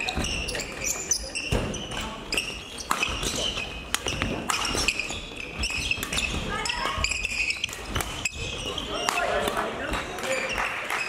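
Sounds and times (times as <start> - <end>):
voices in a hall: 0.0 - 11.0
rackets striking shuttlecocks: 1.4 - 10.5.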